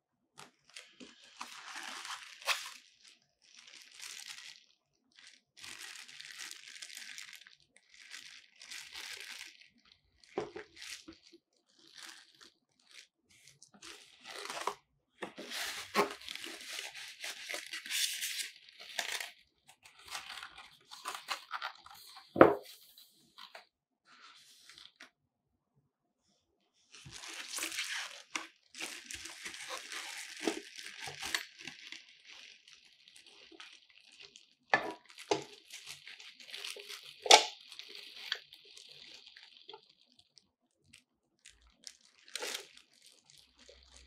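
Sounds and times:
plastic wrapping crinkling: 0.4s - 23.6s, 24.3s - 25.0s, 26.9s - 44.0s.

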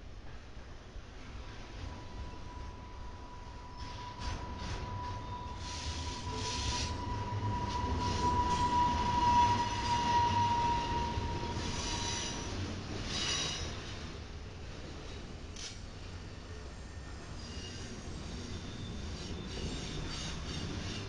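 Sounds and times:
freight train rumbling past: 0.0s - 21.0s
high-pitched wheel squeal: 2.2s - 13.8s, 16.9s - 21.0s.

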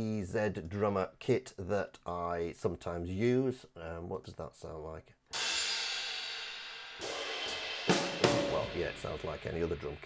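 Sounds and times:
cymbal ringing: 5.4s - 9.2s
drum hits: 5.4s - 9.8s.

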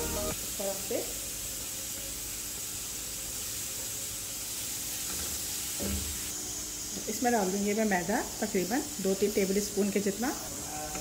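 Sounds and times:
onions sizzling in hot oil: 0.0s - 10.7s.

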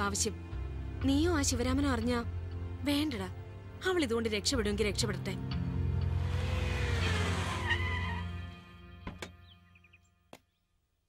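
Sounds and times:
car tyres skidding to a stop: 6.2s - 8.4s.

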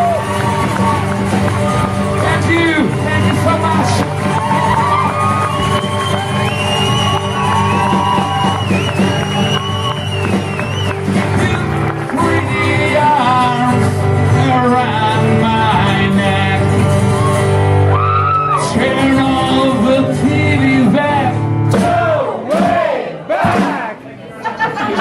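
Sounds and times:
crowd shouts and whoops: 0.0s - 11.2s, 17.0s - 18.8s
strummed acoustic guitar: 0.0s - 17.9s, 18.6s - 22.8s
person singing: 11.0s - 16.9s, 18.5s - 22.0s.

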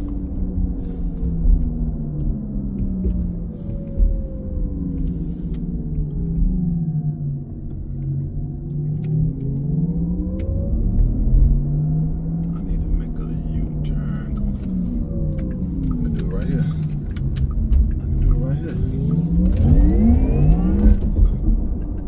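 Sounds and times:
electric car hum: 0.0s - 22.0s
road rumble: 0.0s - 22.0s.

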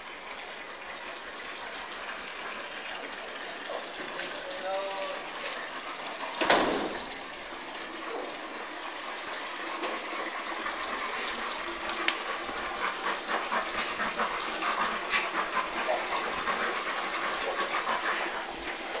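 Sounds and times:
puppies playing: 8.0s - 19.0s.

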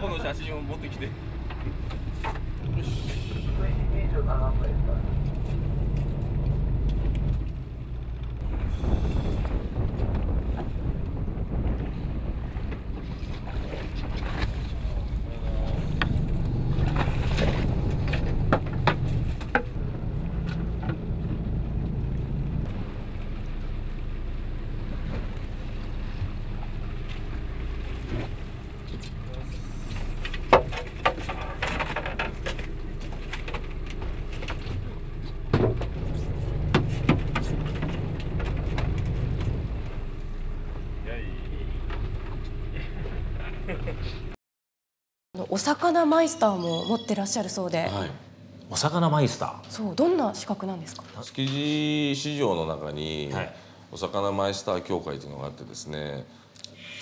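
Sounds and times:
boat engine rumble: 0.0s - 44.4s
wind on microphone: 8.4s - 19.8s.

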